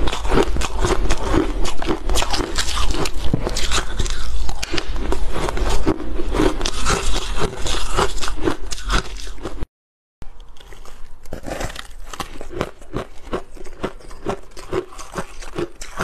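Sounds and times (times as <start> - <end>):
crunching and chewing ice: 0.0 - 16.0.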